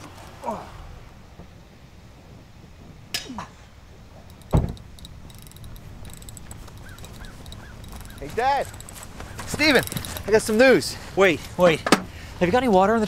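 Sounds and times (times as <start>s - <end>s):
low outdoor background: 0.0s - 13.0s.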